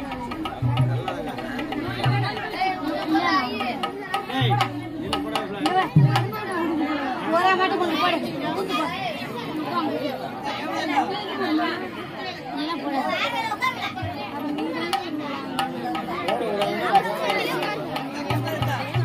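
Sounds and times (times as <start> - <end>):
babble of many voices: 0.0 - 19.0.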